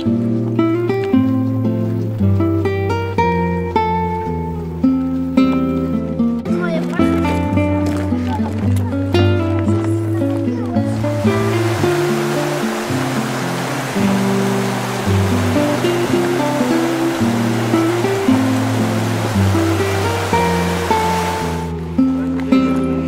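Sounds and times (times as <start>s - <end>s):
slow low music notes: 0.0s - 23.0s
mountain stream rushing: 10.8s - 21.9s.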